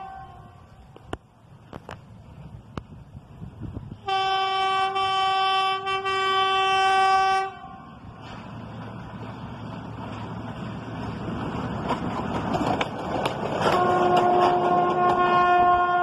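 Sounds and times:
train horn blast: 0.0 - 0.8, 4.0 - 8.3, 13.6 - 16.0
train rumbling on rails: 0.0 - 16.0.

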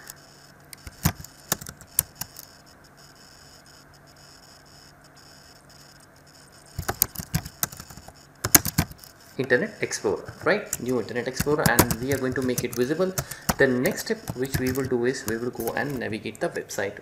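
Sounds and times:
keyboard keys clicking: 0.0 - 2.6, 6.7 - 9.1, 10.1 - 16.1
low steady hum: 0.0 - 17.0.

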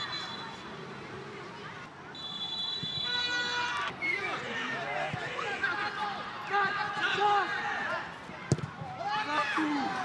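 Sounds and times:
players shouting: 3.0 - 10.0
football being kicked: 8.4 - 9.0.

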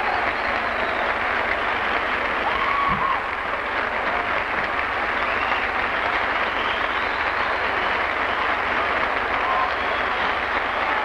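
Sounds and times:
large audience applauding: 0.0 - 11.0.

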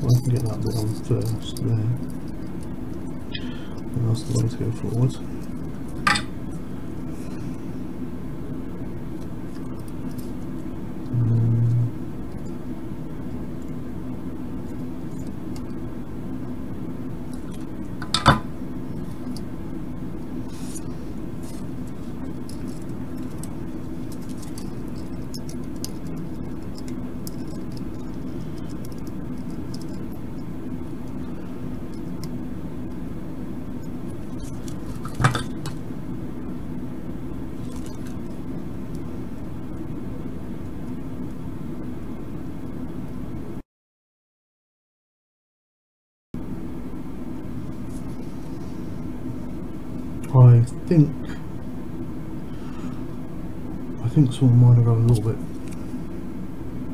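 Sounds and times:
steady low hum: 0.0 - 43.6, 46.4 - 56.9.

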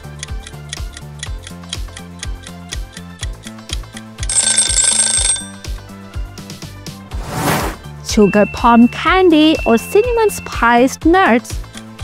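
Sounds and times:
upbeat background music: 0.0 - 12.0
ringing alarm bell: 4.3 - 5.6, 8.2 - 10.8.

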